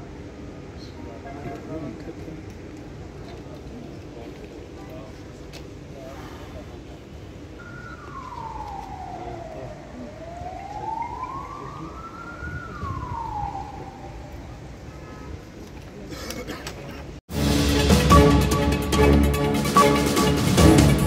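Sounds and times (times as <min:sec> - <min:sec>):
street noise: 0:00.0 - 0:21.0
siren wailing: 0:07.4 - 0:15.1.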